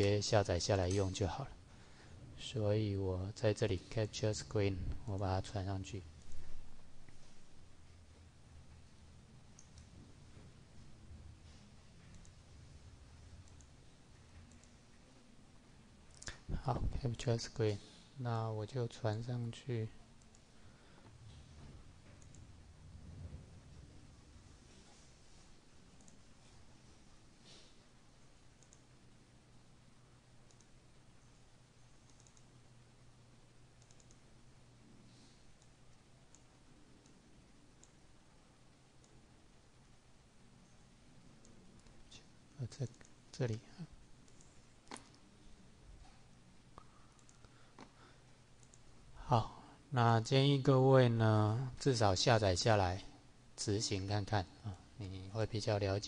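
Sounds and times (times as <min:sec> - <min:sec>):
low steady hum: 0:00.0 - 0:56.0
computer mouse clicks: 0:09.5 - 0:09.9, 0:12.1 - 0:12.4, 0:13.4 - 0:13.8, 0:14.4 - 0:14.8, 0:20.2 - 0:20.5, 0:22.1 - 0:22.5, 0:26.0 - 0:26.3, 0:28.6 - 0:29.0, 0:30.4 - 0:31.3, 0:32.0 - 0:32.5, 0:33.8 - 0:34.3, 0:35.5 - 0:38.0, 0:44.2 - 0:45.2, 0:46.8 - 0:48.0, 0:48.6 - 0:49.0
faint computer mouse clicks: 0:14.5 - 0:14.8, 0:28.6 - 0:28.9, 0:30.4 - 0:30.8, 0:32.0 - 0:32.5, 0:33.8 - 0:34.2, 0:46.8 - 0:48.0.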